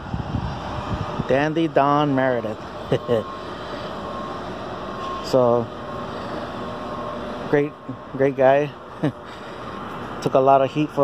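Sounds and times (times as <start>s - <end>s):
steady rushing noise: 0.0s - 5.0s
faint hum: 0.0s - 11.0s.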